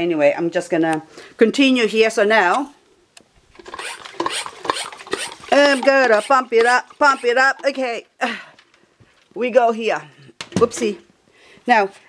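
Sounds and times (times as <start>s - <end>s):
rubbing rasping handling noise: 3.5s - 7.9s.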